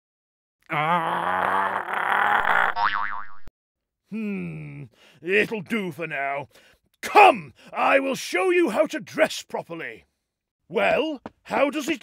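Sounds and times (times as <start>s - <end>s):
man straining and grunting: 0.6s - 2.8s, 4.1s - 5.0s
cartoon boing sound effect: 2.7s - 3.5s.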